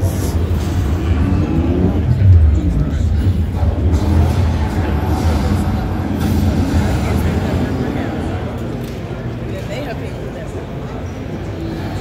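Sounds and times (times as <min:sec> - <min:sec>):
bass-heavy music over speakers: 0:00.0 - 0:08.5
crowd chatter: 0:00.0 - 0:12.0.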